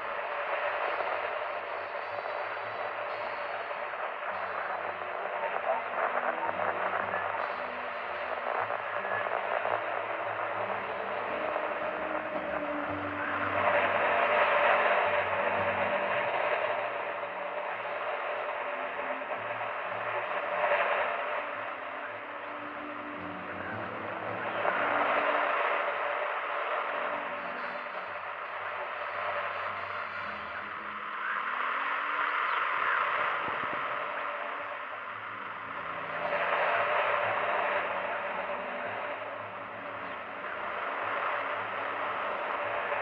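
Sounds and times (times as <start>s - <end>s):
radio static hiss: 0.0s - 43.0s
faint radio voice: 0.6s - 43.0s
faint low musical notes: 21.6s - 25.7s.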